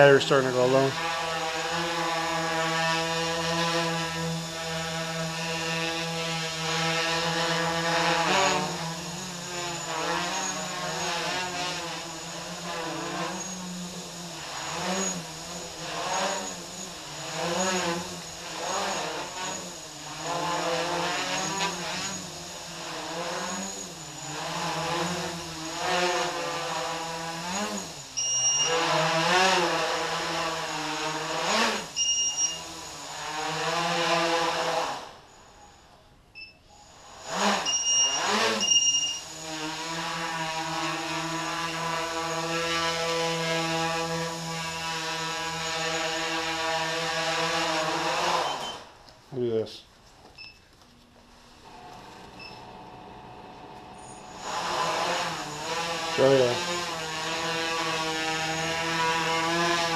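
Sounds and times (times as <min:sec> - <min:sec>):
drone motors buzzing whine: 0:00.0 - 0:49.0, 0:51.6 - 0:59.9
short beeps: 0:28.2 - 0:28.7, 0:32.0 - 0:32.6, 0:35.4 - 0:36.7, 0:37.7 - 0:39.2.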